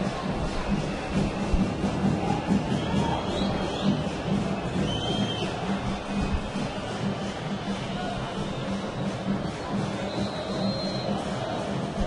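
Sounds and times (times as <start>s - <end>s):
low drumbeat: 0.0s - 12.0s
stadium crowd noise: 0.0s - 12.0s.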